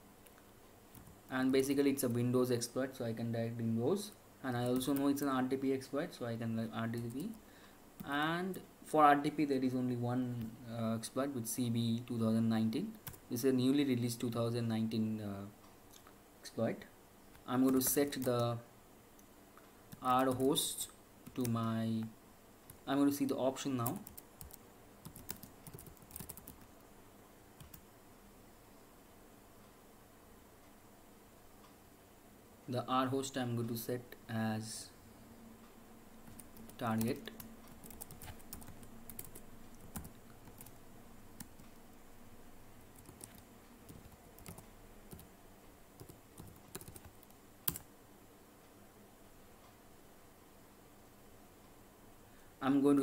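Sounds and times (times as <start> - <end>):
keyboard typing clicks: 23.8 - 26.7, 36.3 - 40.7, 43.0 - 45.3, 46.0 - 47.9.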